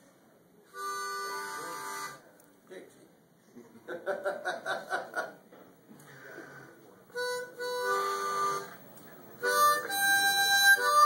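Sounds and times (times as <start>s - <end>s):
harmonica chord: 0.7s - 2.2s, 7.1s - 8.8s, 9.4s - 11.0s.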